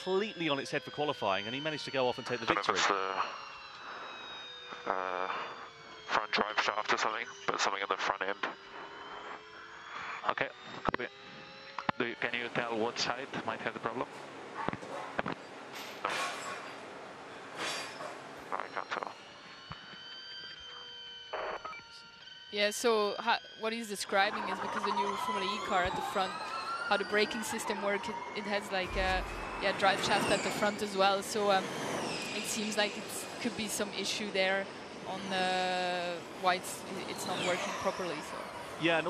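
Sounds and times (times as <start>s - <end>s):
electric powertrain whine: 0.0s - 14.6s, 18.2s - 39.0s
electric motor whine: 24.0s - 38.7s.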